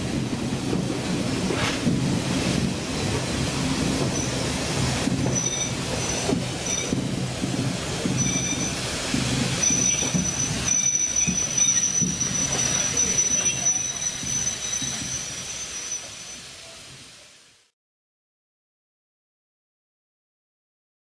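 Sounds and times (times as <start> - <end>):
railway carriage wheels rumbling: 0.0 - 17.6
high-pitched squeal from running gear: 5.3 - 7.0, 8.2 - 8.8, 9.6 - 16.7.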